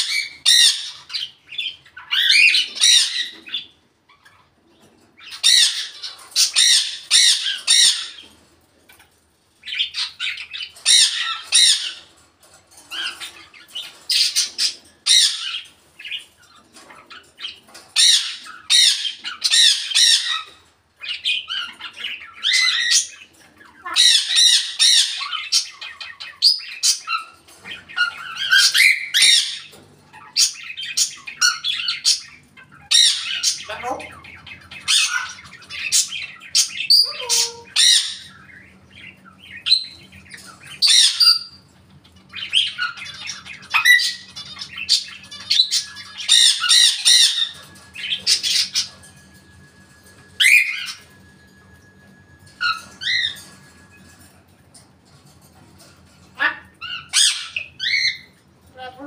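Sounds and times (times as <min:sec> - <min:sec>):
parrot squawking: 0:00.0 - 0:04.5, 0:05.2 - 0:08.3, 0:09.6 - 0:12.1, 0:12.9 - 0:49.4, 0:50.2 - 0:51.5, 0:52.4 - 0:53.8, 0:55.9 - 0:59.0.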